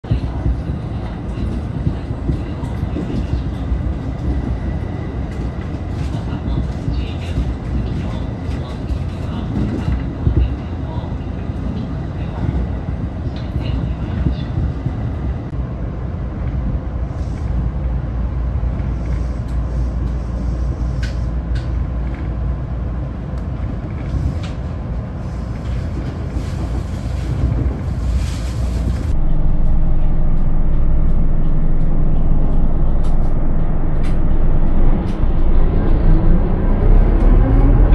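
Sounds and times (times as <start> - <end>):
rail clicks: 0.0 - 15.6, 16.2 - 37.9
train rumbling on rails: 0.0 - 37.9
bus engine running: 26.5 - 37.9.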